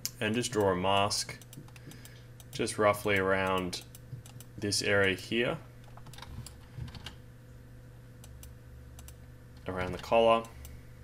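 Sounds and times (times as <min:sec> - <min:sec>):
faint electrical hum: 0:00.0 - 0:11.0
computer mouse clicks: 0:01.4 - 0:05.2, 0:08.2 - 0:09.2.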